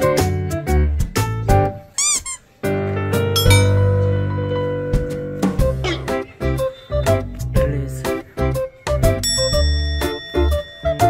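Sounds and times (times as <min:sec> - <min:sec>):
light instrumental music: 0:00.0 - 0:11.0
quick squeaky chirps: 0:01.9 - 0:02.5.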